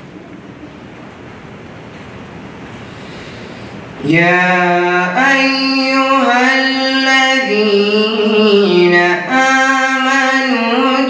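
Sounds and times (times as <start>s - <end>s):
man reciting melodically: 4.0s - 11.0s.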